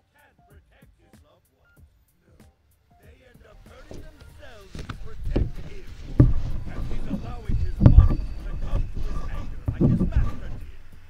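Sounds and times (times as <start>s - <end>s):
faint voices: 3.0s - 11.0s
deep heartbeat-like thuds: 3.4s - 11.0s.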